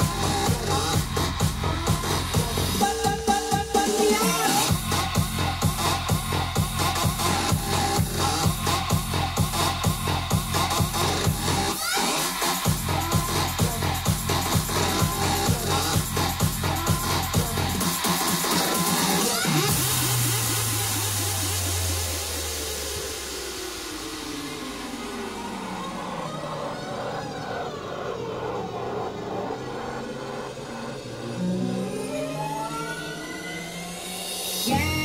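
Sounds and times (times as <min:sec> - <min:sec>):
electronic dance music mix: 0:00.0 - 0:35.0
sweeping filter effect: 0:19.7 - 0:35.0.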